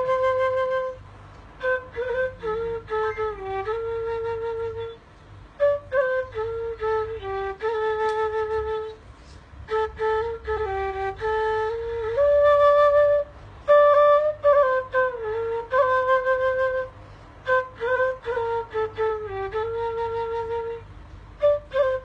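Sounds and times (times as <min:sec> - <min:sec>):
wooden flute melody: 0:00.0 - 0:22.0.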